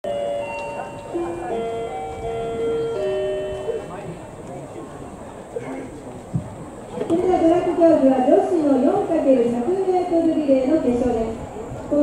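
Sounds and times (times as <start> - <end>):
electronic melody over loudspeakers: 0.0 - 4.0.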